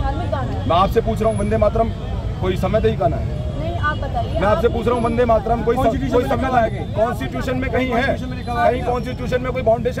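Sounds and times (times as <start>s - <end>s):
man speaking into a microphone: 4.4s - 10.0s.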